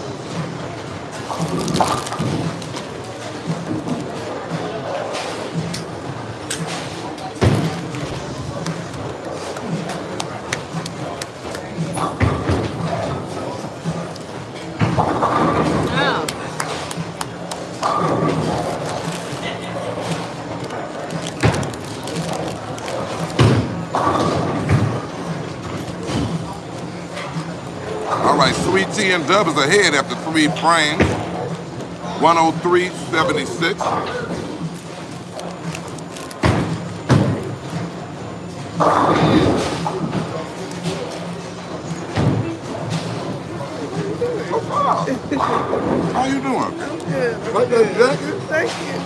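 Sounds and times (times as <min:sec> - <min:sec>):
bowling balls and pins clattering: 0:00.0 - 0:19.1, 0:19.8 - 0:28.7
background chatter: 0:00.0 - 0:49.0.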